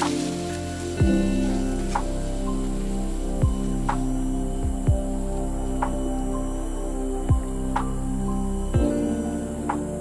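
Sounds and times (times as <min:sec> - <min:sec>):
steady synth drone: 0:00.0 - 0:10.0.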